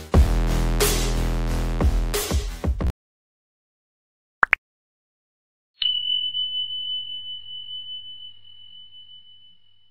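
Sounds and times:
notification bell ding: 0:05.8 - 0:09.9.

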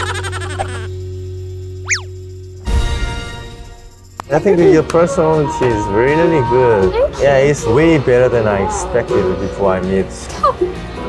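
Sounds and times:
high-pitched cartoon laughter: 0:00.0 - 0:00.9
whistle-like glide: 0:01.8 - 0:02.1
music bed: 0:02.4 - 0:11.0.

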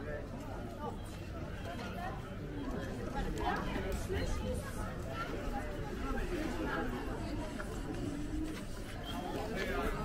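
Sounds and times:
chatter of passers-by: 0:00.0 - 0:10.0.

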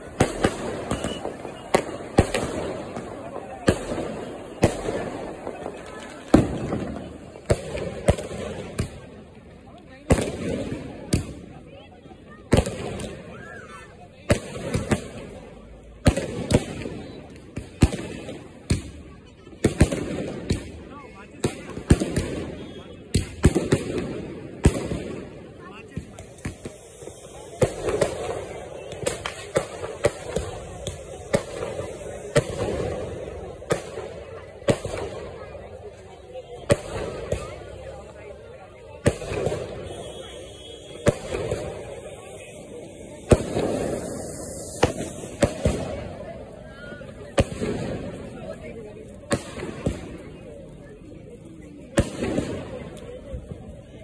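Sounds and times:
fireworks bursting bangs: 0:00.0 - 0:54.0.

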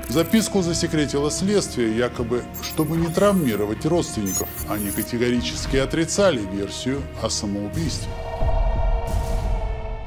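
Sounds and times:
low dark music drone: 0:00.0 - 0:10.0.

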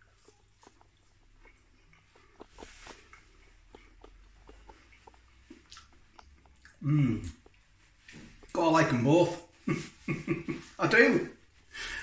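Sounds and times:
chewing chips: 0:00.0 - 0:08.6
mouth clicks: 0:00.0 - 0:08.6.

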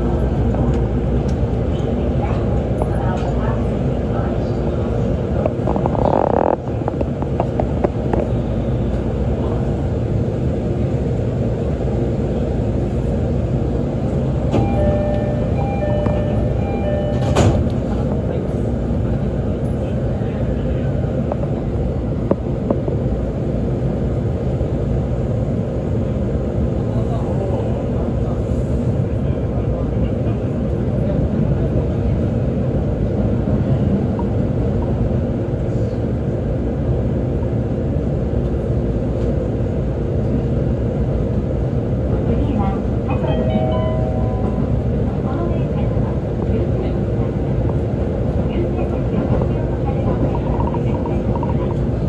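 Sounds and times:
train rumble: 0:00.0 - 0:52.0
train doors shutting: 0:12.9 - 0:23.0.

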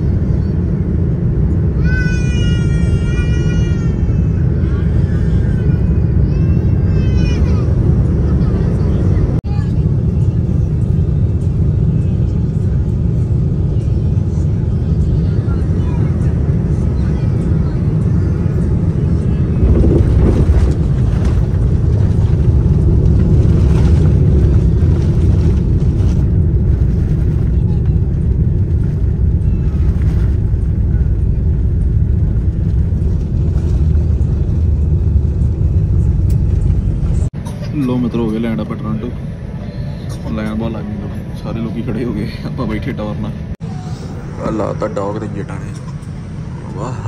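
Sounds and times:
jet engine and airflow rumble: 0:00.0 - 0:47.0.

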